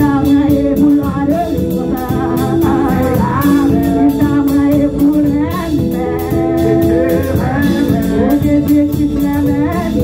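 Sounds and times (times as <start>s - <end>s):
steady drum beat: 0.0s - 10.0s
woman singing into microphone: 0.0s - 10.0s.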